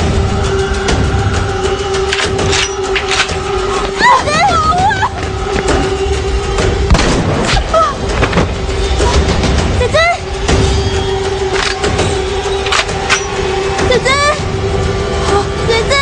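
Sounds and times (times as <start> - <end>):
music drone: 0.0 - 16.0.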